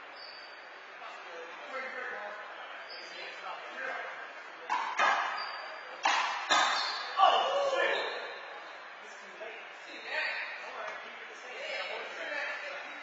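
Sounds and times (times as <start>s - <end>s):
handball smacking wall with echo: 4.7s - 8.3s.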